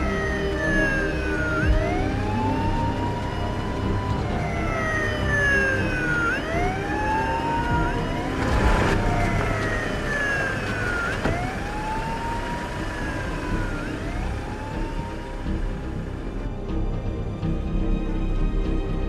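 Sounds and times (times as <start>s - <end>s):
emergency vehicle siren wailing: 0.0s - 16.4s.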